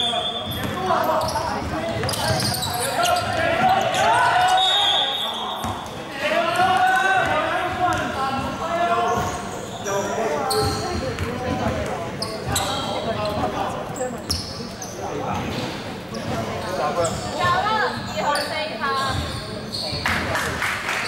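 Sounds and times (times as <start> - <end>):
sneaker squeaks: 0.0 - 6.2, 6.8 - 20.4
players calling out: 0.0 - 15.0
basketball bouncing on floor: 10.6 - 12.0.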